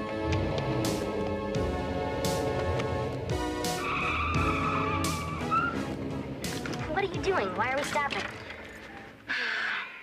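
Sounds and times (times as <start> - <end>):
car tires squealing: 3.7 - 5.9.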